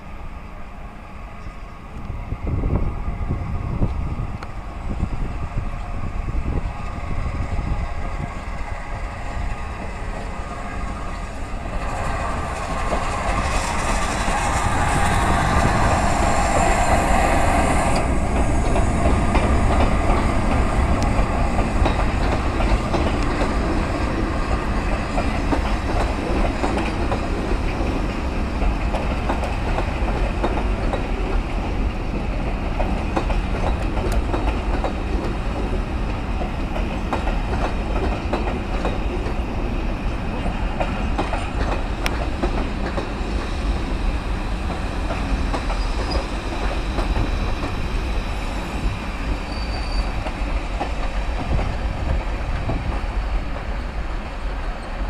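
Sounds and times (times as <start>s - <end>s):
steam locomotive hiss: 0.0s - 55.0s
train wheels clickety-clack: 6.5s - 55.0s.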